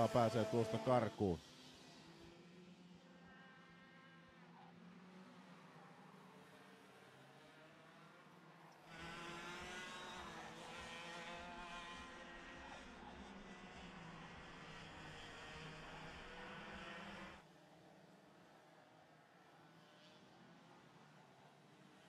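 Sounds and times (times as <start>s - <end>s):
kart engines racing: 0.0s - 22.0s.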